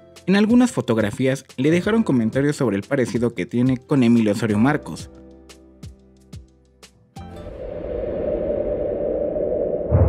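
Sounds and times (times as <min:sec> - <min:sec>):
deep boom: 0:07.4 - 0:10.0
low whooshing rumble: 0:07.4 - 0:10.0.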